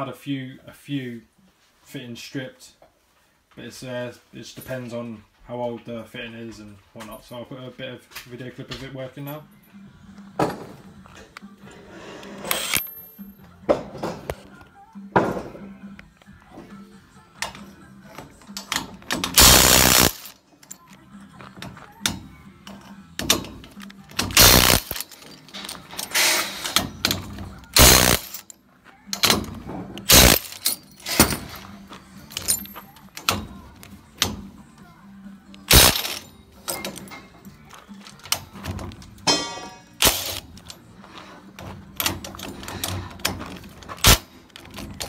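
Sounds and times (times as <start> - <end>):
tool handling knocks and rustles: 10.3 - 11.4, 13.6 - 14.4, 15.1 - 15.8, 20.8 - 28.5, 29.1 - 34.6, 36.0 - 45.0
cordless impact wrench bursts: 12.4 - 12.8, 19.2 - 20.3, 24.2 - 25.2, 26.1 - 28.4, 30.0 - 31.5, 35.7 - 36.2, 40.0 - 40.6, 44.0 - 44.2.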